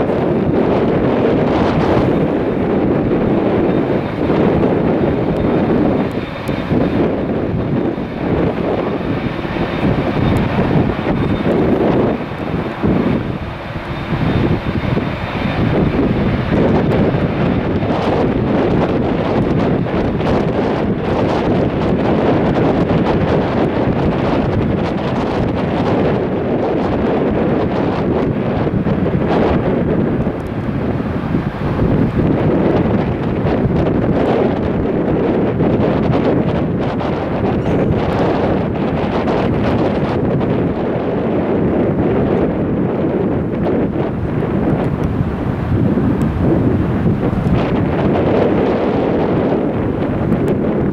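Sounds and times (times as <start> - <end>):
gusty wind on microphone: 0.0 - 50.9
jet airliner engines running: 0.0 - 50.9.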